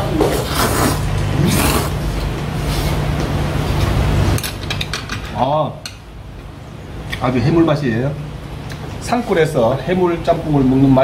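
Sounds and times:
steady low hum: 0.0s - 11.0s
man slurping noodles: 0.4s - 2.0s.

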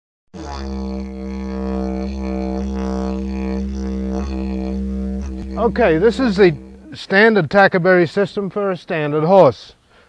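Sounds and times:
didgeridoo drone: 0.4s - 7.1s.

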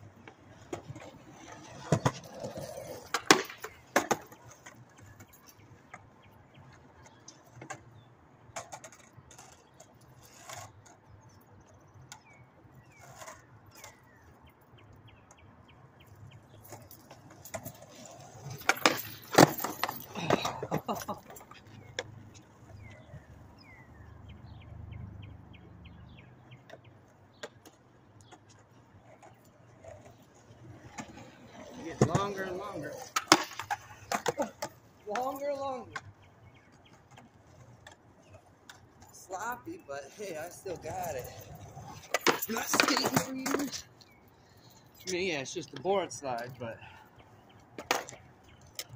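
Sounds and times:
skateboard clacks: 0.0s - 11.0s, 16.3s - 24.0s, 26.1s - 44.1s, 47.6s - 48.9s
skateboard wheels rolling on concrete: 0.0s - 48.9s.

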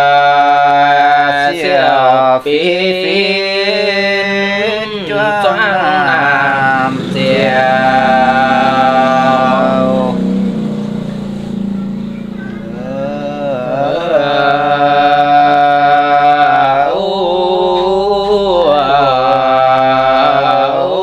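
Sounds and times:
person singing unaccompanied: 0.0s - 21.0s.

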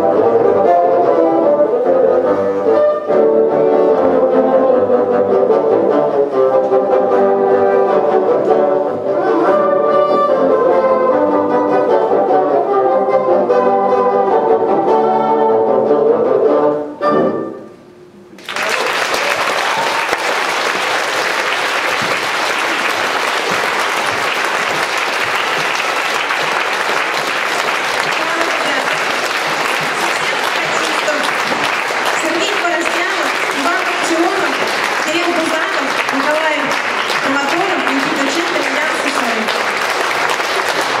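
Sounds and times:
music: 0.0s - 18.4s, 20.4s - 41.0s
audience applauding: 18.4s - 41.0s
woman speaking over microphone: 28.2s - 29.0s, 30.0s - 31.4s, 32.2s - 39.5s.

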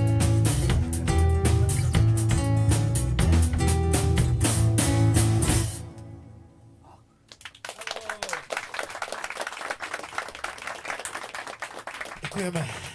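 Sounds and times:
audience clapping: 7.3s - 12.9s
voices among applause: 7.3s - 12.9s.

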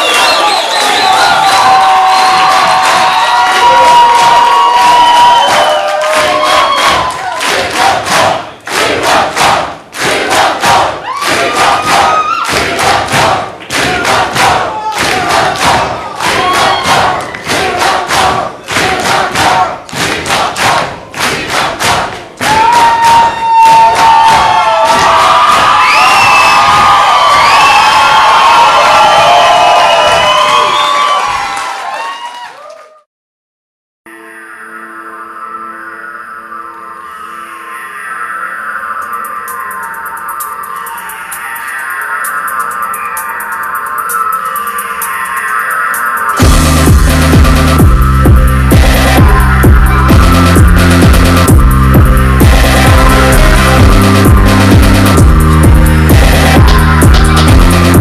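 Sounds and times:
crowd whistling: 0.0s - 8.6s, 11.0s - 12.6s, 16.0s - 17.9s, 22.5s - 32.6s, 38.6s - 46.8s
crowd clapping in rhythm: 0.0s - 33.0s, 46.2s - 58.0s
crowd cheering and shouting: 0.0s - 33.1s, 37.8s - 58.0s.

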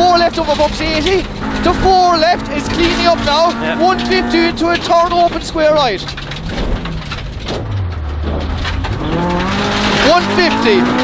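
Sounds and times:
car engine running: 0.0s - 11.0s
tyre and road noise: 0.0s - 11.0s.

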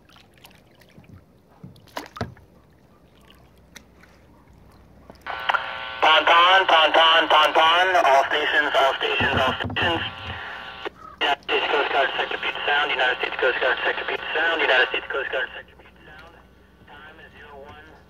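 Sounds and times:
radio squelch hiss: 5.2s - 18.0s
voice over radio: 5.3s - 18.0s.

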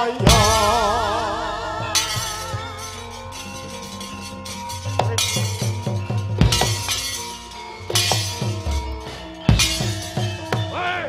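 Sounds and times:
gamelan ringing metallophones: 0.0s - 11.0s
sharp metallic clashes: 0.0s - 11.0s.

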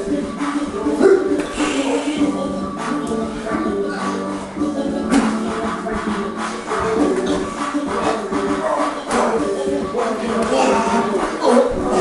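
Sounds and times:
melodic music: 0.0s - 12.0s.

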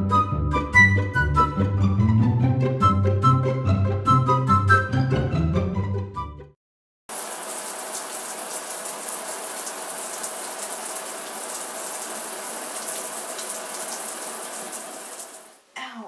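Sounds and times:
shower water spraying: 7.1s - 15.6s.

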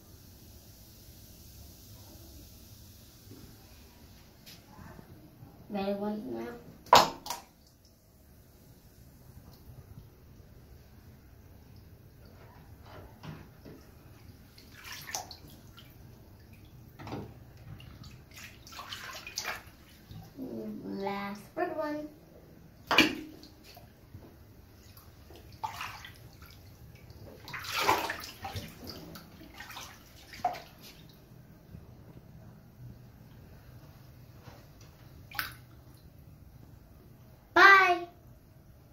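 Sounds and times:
hand splashing through bathwater: 6.8s - 7.8s, 14.5s - 16.0s, 17.8s - 20.4s, 22.8s - 23.9s, 24.8s - 31.2s, 35.2s - 36.0s
bath water moving: 6.8s - 37.2s.

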